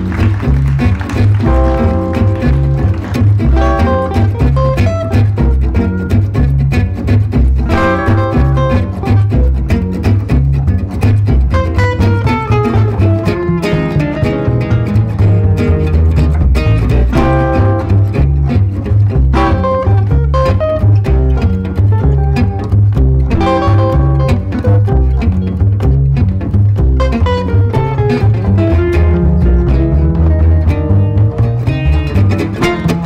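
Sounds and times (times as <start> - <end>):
acoustic guitar melody: 0.0 - 33.0
plucked double bass: 0.0 - 33.0
strummed guitar chords: 0.0 - 33.0.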